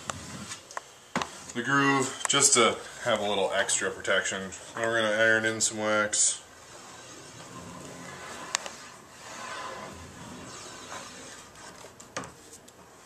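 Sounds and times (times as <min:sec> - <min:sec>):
iron rubbing and scraping on ski: 0:06.2 - 0:11.8.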